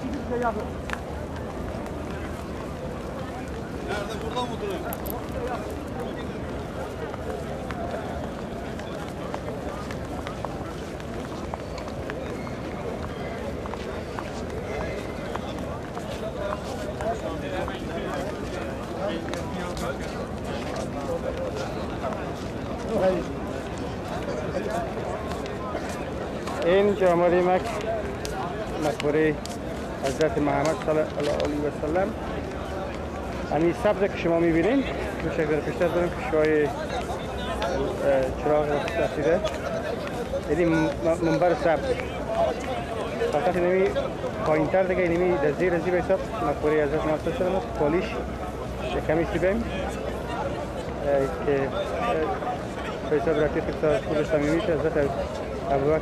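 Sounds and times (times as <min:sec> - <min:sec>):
footsteps on stone paving: 0:00.0 - 0:48.3
crowd voices talking: 0:00.0 - 0:56.0
outdoor background noise: 0:00.0 - 0:56.0
man talking: 0:28.6 - 0:32.2, 0:33.5 - 0:50.1, 0:51.0 - 0:56.0.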